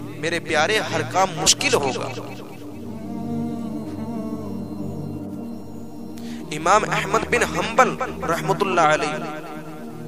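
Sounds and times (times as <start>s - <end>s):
wordless humming voices: 0.0s - 10.0s.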